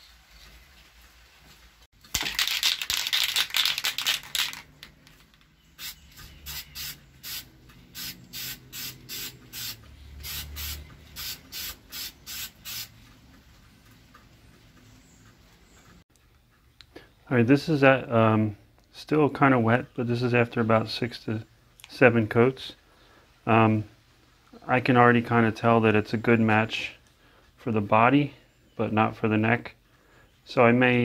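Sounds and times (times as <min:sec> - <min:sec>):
aerosol spray paint hissing: 0:05.8 - 0:12.9.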